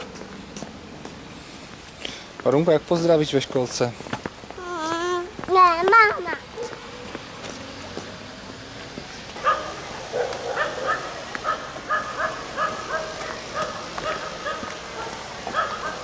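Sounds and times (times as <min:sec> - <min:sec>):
dog barking: 0:06.6 - 0:07.1, 0:09.4 - 0:16.0.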